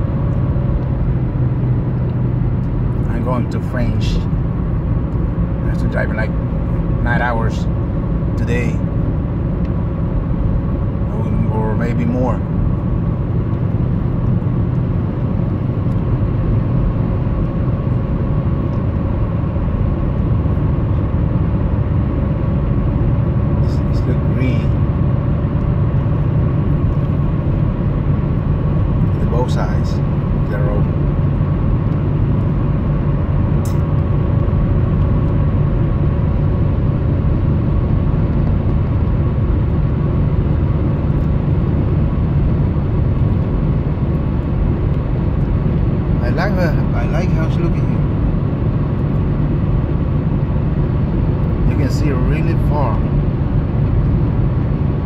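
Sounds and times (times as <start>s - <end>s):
tyre and engine rumble: 0.0s - 55.0s.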